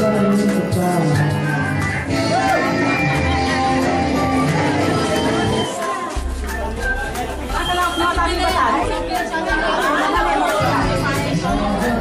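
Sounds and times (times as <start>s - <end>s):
background music with bass line: 0.0s - 12.0s
many people chattering: 0.0s - 12.0s.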